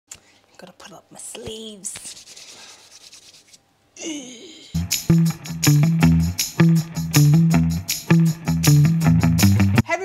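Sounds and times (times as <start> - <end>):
palms rubbing together: 1.3 - 3.6
person groaning: 4.0 - 4.8
upbeat guitar and bass music: 4.8 - 9.8.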